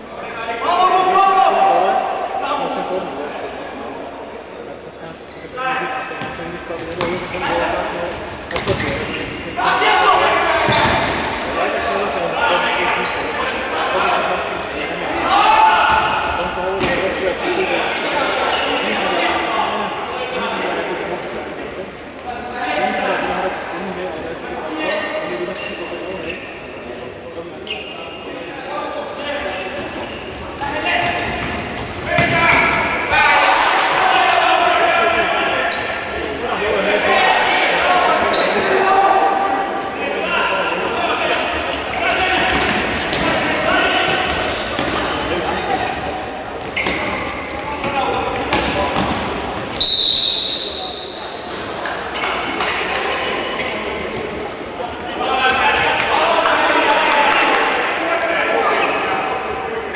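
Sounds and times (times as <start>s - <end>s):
voices echoing in hall: 0.0s - 59.9s
referee's whistle: 49.8s - 51.4s.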